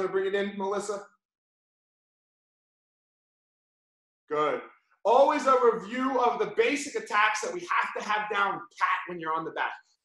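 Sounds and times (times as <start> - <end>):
man's voice: 0.0 - 1.0, 4.3 - 9.8.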